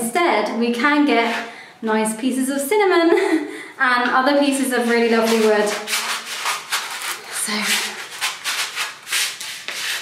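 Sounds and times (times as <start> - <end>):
sandpaper sanding wood: 4.8 - 10.0.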